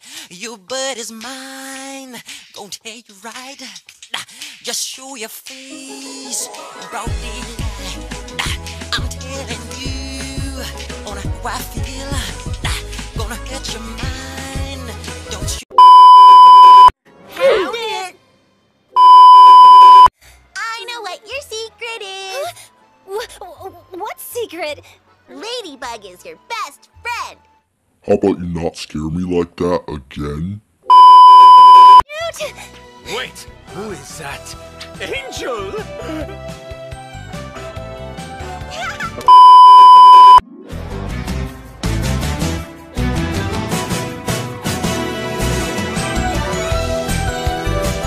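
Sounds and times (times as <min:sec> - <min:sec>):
music with voice: 0:00.5 - 0:15.6, 0:32.5 - 0:38.9, 0:40.7 - 0:48.0
censor bleep tone: 0:15.8 - 0:16.9, 0:19.0 - 0:20.1, 0:30.9 - 0:32.0, 0:39.3 - 0:40.4.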